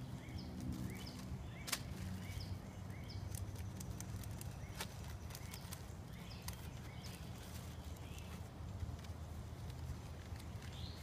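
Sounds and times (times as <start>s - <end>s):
plastic bag crinkling: 3.2s - 11.0s.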